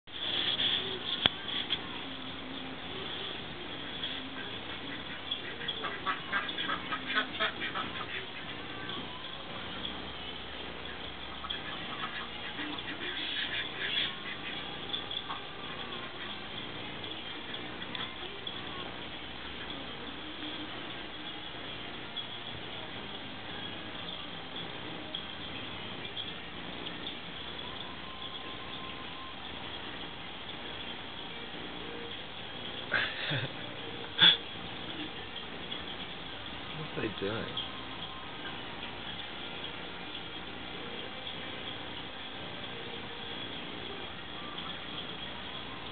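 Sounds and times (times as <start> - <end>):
steady background hiss: 0.1 - 45.9
ducks quacking: 3.8 - 8.9, 10.8 - 16.4.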